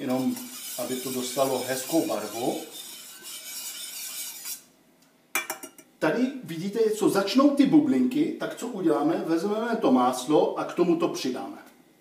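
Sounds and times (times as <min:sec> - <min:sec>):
wooden spatula scraping a pan: 0:00.0 - 0:04.7.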